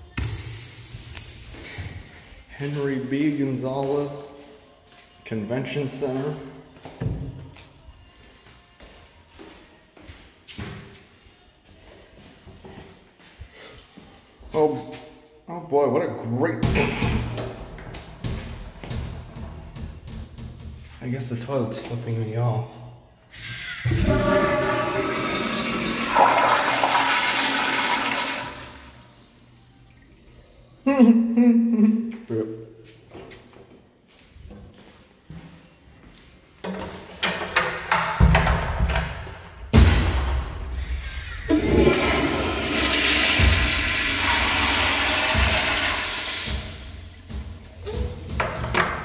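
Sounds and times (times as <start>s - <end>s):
toilet flushing: 23.9s - 29.0s, 41.5s - 47.2s.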